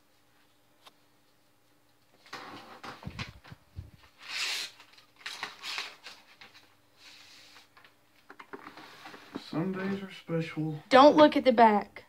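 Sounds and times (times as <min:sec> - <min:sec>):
paper envelope tearing and rustling: 0:04.0 - 0:06.8.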